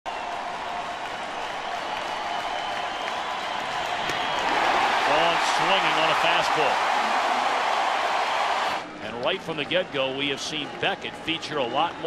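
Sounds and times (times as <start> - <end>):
crowd cheering and clapping: 0.1 - 8.9.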